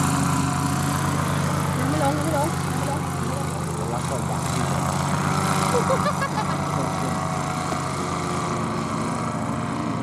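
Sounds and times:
small engine droning overhead: 0:00.0 - 0:10.0.

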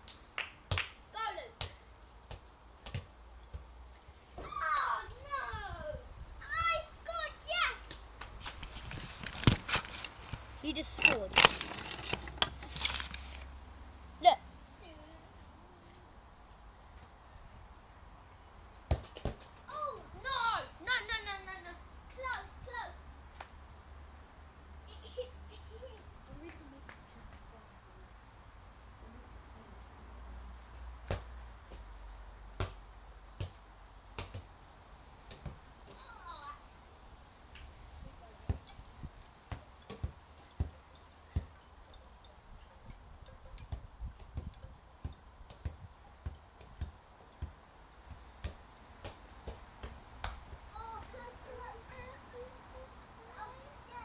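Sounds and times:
ball bouncing thuds: 0:01.5 - 0:03.7, 0:18.9 - 0:19.6, 0:31.0 - 0:31.8, 0:33.4 - 0:34.5, 0:35.2 - 0:36.0, 0:38.4 - 0:38.7, 0:39.4 - 0:41.6, 0:43.6 - 0:50.4
child calling out: 0:04.4 - 0:07.8
child shouting and squealing: 0:04.4 - 0:07.9, 0:19.7 - 0:23.0, 0:50.7 - 0:54.0.

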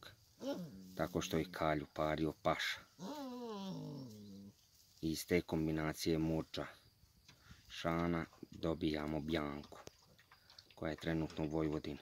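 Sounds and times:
puppy whining: 0:00.4 - 0:00.9, 0:03.0 - 0:04.5.

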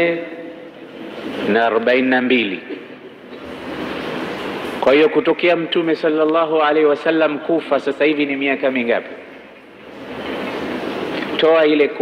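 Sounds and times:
steady rushing noise: 0:00.7 - 0:05.6, 0:08.6 - 0:12.0.

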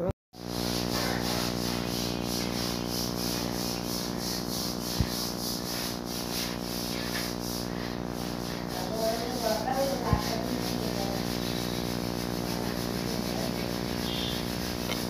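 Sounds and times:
mechanical hum: 0:00.0 - 0:15.0.

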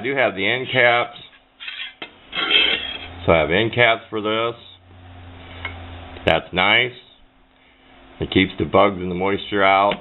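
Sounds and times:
tube scraping on desk: 0:01.6 - 0:03.2.

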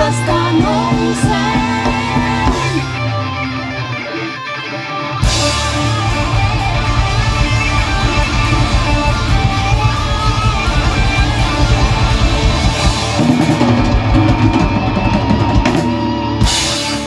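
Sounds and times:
drums: 0:00.0 - 0:17.0
electric guitar: 0:00.0 - 0:17.0
live rock band playing: 0:00.0 - 0:17.0.

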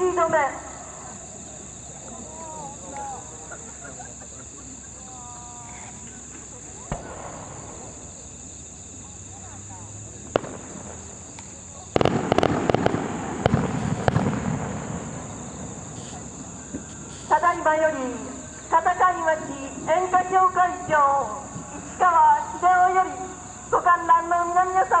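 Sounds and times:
crickets chirping: 0:00.0 - 0:25.0
fireworks crackling: 0:00.0 - 0:25.0
firework bangs: 0:06.1 - 0:08.7, 0:09.3 - 0:25.0.

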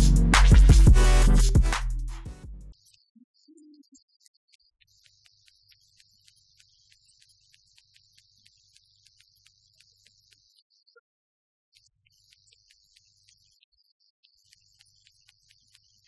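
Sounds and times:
faint ticks: 0:03.7 - 0:11.0, 0:11.7 - 0:16.0.

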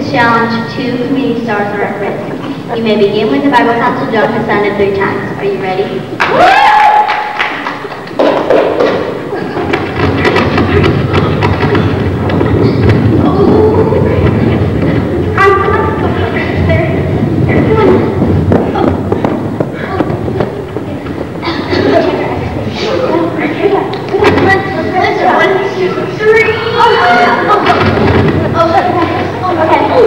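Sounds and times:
thumps and knocks: 0:08.2 - 0:15.2, 0:17.2 - 0:21.4
voices calling out: 0:08.8 - 0:30.0.

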